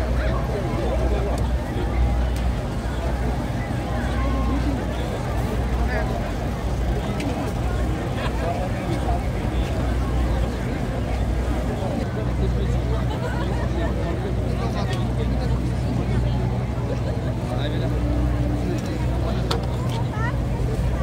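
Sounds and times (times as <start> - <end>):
crowd babble: 0.0 - 21.0
steady low rumble: 0.0 - 21.0.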